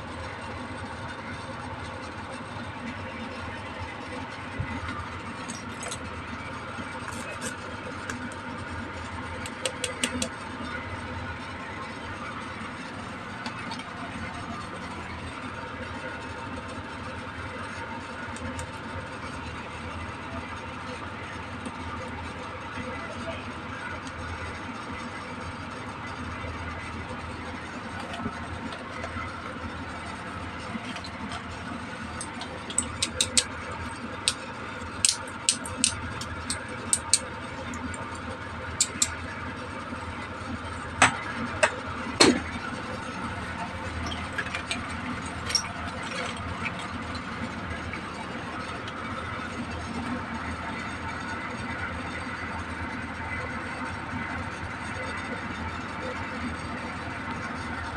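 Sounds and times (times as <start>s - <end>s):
steady background hum: 0.0s - 57.9s
plastic clacks: 9.4s - 10.4s.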